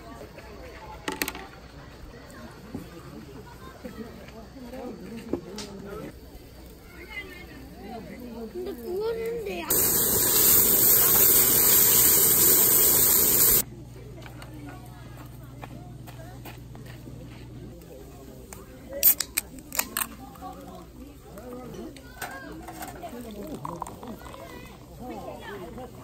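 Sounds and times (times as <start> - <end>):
meat sizzling on grill: 9.7 - 13.6.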